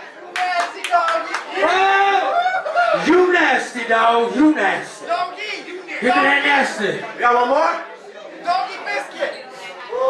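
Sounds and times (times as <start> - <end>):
hand claps: 0.3 - 1.5.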